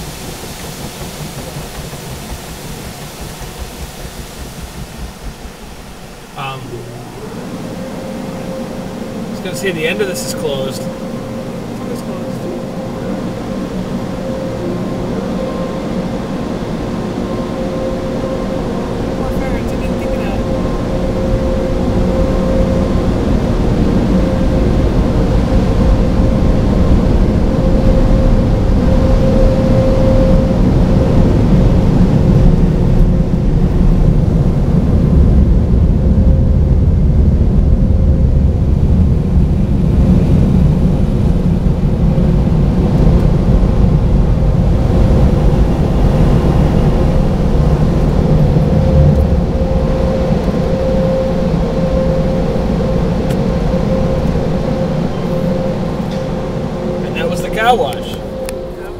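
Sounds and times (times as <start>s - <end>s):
car wash water spray: 0.0s - 6.6s
constant whine: 0.0s - 58.9s
drying blowers rushing: 0.0s - 58.9s
low rumble: 0.0s - 58.9s.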